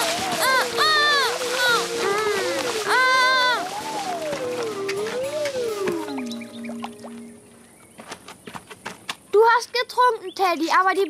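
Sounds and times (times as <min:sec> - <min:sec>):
falling musical tone: 0:00.0 - 0:07.7.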